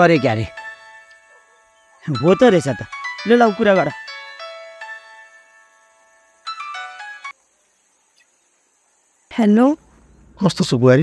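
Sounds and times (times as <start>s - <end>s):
mobile phone ringtone: 0.0s - 7.4s.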